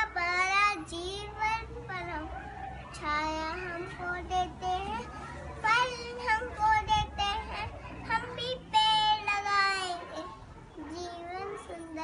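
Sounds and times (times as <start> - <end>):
boy reciting in sing-song voice: 0.0 - 2.4, 3.0 - 12.0.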